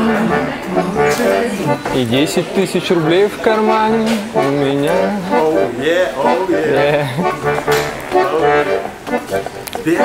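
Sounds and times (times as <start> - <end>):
button accordion chords: 0.0 - 10.0
man singing: 3.0 - 5.8.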